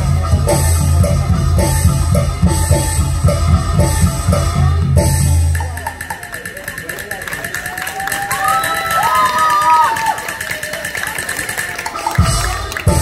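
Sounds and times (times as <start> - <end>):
drums: 0.0 - 13.0.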